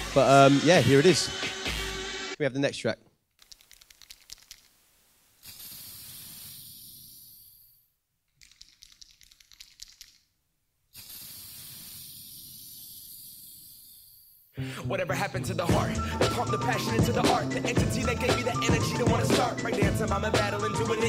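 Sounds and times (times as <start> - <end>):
crackling clicks: 3.4 - 4.8
steady hiss: 4.2 - 7.9, 10.9 - 14.4.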